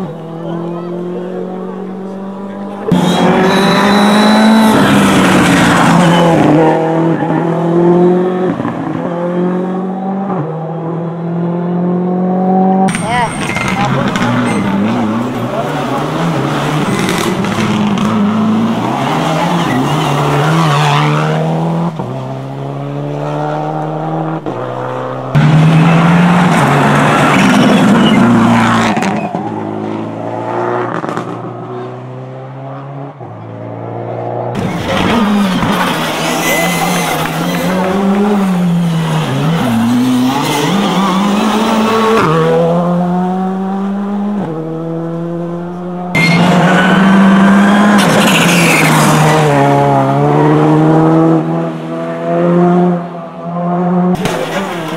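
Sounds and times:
rally car engines revving past: 0.0s - 54.9s.

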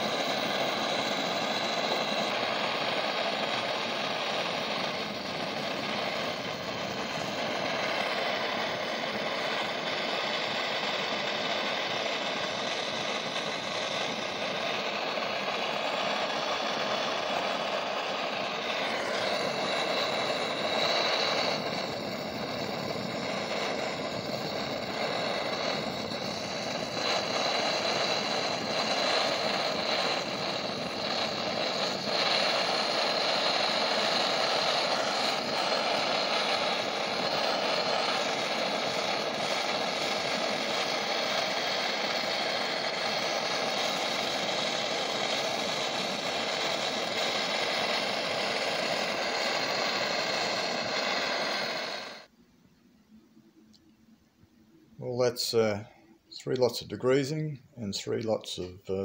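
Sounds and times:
blowtorch hissing: 0.0s - 52.3s, 55.0s - 59.0s.

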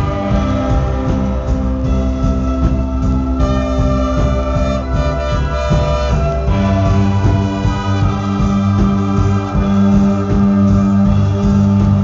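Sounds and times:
brass horns melody: 0.0s - 12.0s
electric guitar: 0.0s - 12.0s
keyboard: 0.0s - 12.0s
steady drum beat: 0.0s - 12.0s.

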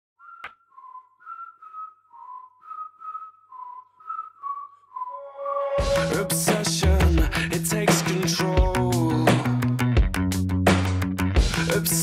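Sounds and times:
whistled melody: 0.2s - 6.9s.

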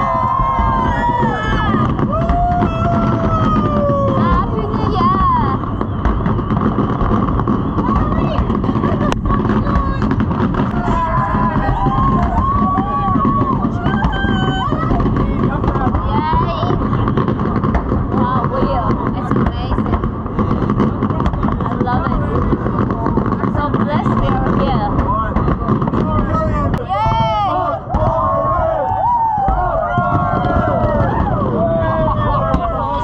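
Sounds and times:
people shouting: 0.0s - 20.0s, 26.2s - 33.0s
firework sharp crack: 0.0s - 33.0s
fireworks rumbling: 0.0s - 33.0s.

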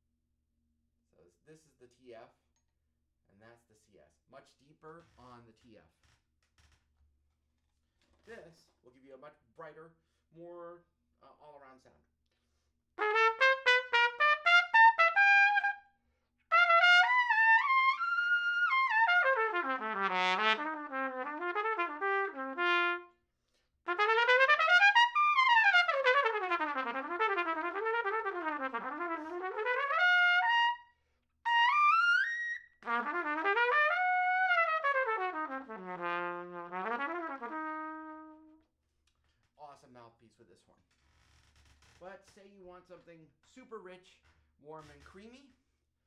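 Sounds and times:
solo trumpet playing fast runs: 13.0s - 15.8s, 16.5s - 23.1s, 23.9s - 30.9s, 31.5s - 38.6s.

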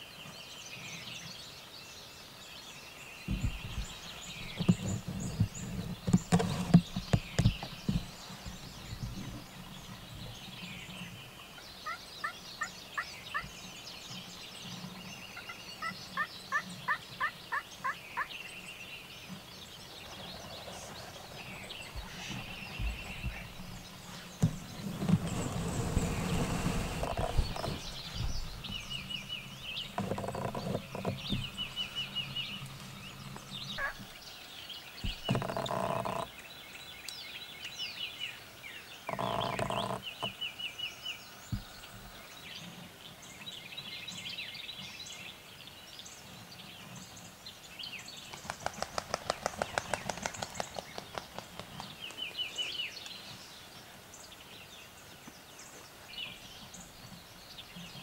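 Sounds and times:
songbirds chirping: 0.0s - 58.0s
turkey yelping: 33.8s - 34.0s
turkeys gobbling: 33.8s - 34.0s.

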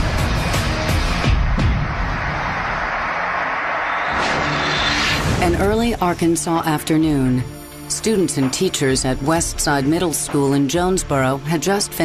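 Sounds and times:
loud rushing whoosh: 1.3s - 5.7s.

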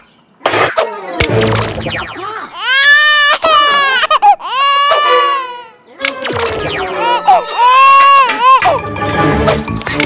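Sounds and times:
cartoon baby crying: 2.2s - 5.8s, 6.8s - 8.9s.

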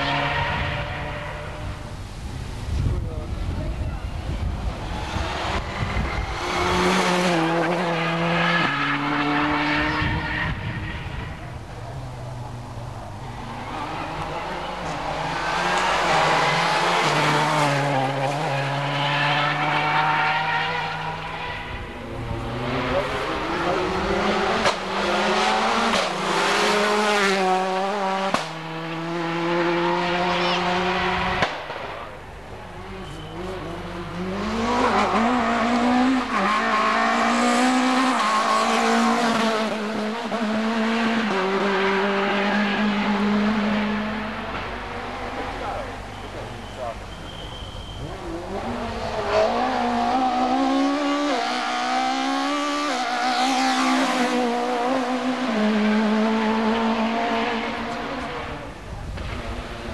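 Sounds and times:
rally cars passing at full throttle: 0.0s - 59.9s.

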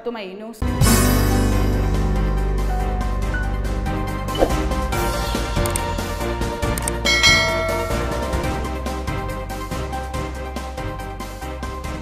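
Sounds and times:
background music with steady beat: 0.6s - 12.0s
bright bell chime: 7.1s - 8.8s.

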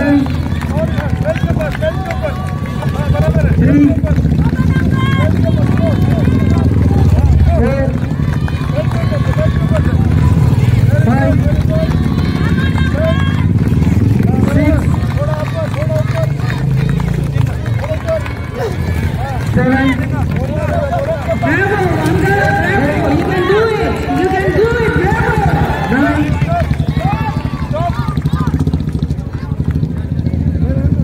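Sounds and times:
motorcycle engine rumbling: 0.0s - 31.0s
people talking: 0.0s - 31.0s.

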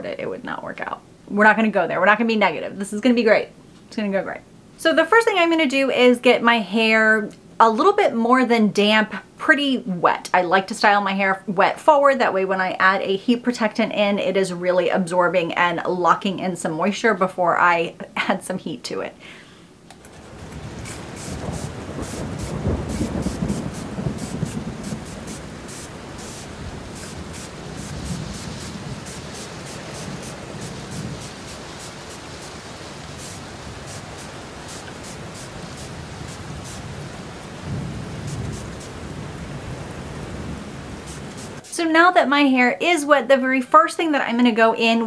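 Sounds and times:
fingers rustling through wet hair: 20.1s - 37.5s, 38.3s - 39.0s
spray bottle hissing mist: 20.8s - 37.0s, 38.2s - 39.0s, 41.0s - 41.9s.

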